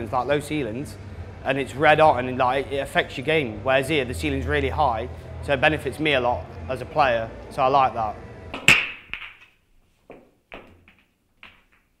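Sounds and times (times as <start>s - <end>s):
pool balls knocking together: 8.6s - 12.0s.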